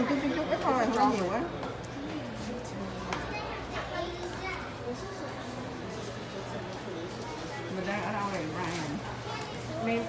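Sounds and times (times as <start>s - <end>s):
indistinct talking: 0.0s - 10.0s
children's voices: 3.1s - 5.4s, 9.1s - 10.0s.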